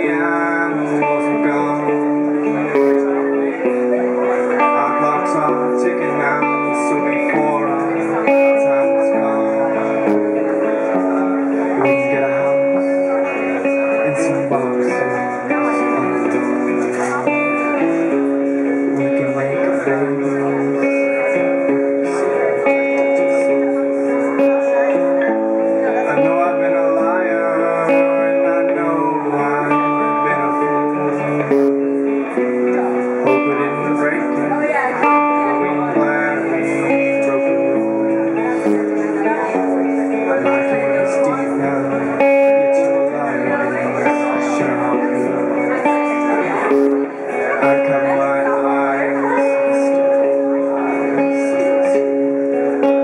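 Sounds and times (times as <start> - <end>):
man singing long held notes: 0.0 - 18.2, 19.0 - 53.0
acoustic guitar strumming: 0.0 - 53.0.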